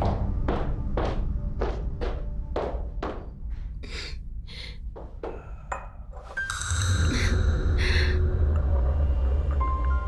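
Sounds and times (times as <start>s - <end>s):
high-heeled footsteps on tile: 0.0s - 3.7s
background music: 0.0s - 10.0s.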